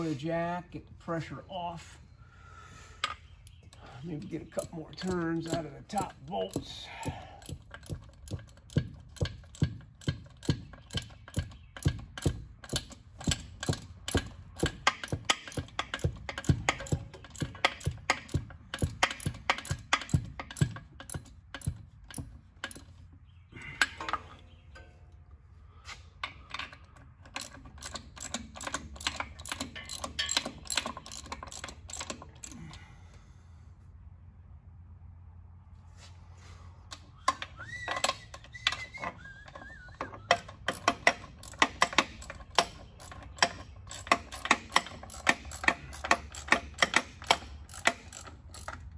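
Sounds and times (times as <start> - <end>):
ratchet wrench clicking: 4.6 - 22.9, 26.5 - 32.8, 36.9 - 48.9.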